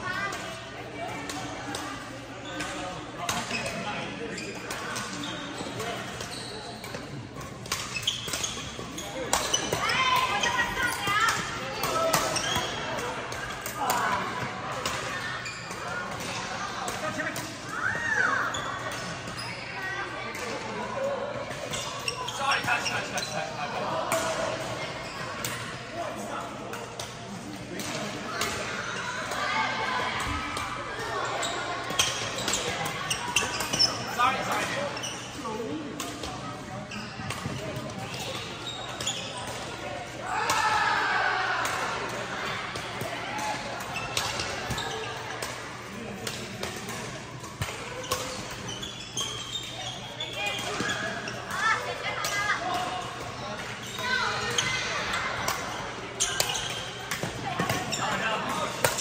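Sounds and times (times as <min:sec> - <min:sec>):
players' voices: 0:00.0 - 0:59.0
racket hitting shuttlecock: 0:58.7 - 0:59.0.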